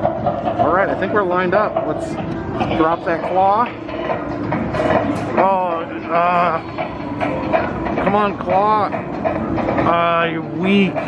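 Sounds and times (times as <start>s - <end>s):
arcade machine music: 0.0s - 11.0s.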